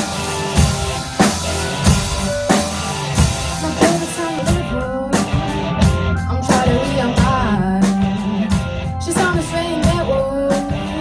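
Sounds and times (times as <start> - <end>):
drum kit beat: 0.0 - 11.0
rock band playing live: 0.0 - 11.0.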